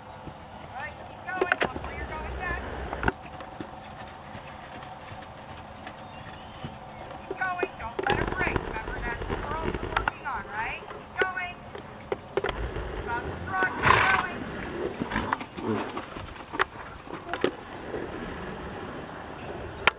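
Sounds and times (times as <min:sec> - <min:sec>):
horse hoofbeats on sand: 0:00.0 - 0:19.7
indistinct voices: 0:00.7 - 0:03.2, 0:07.3 - 0:16.0.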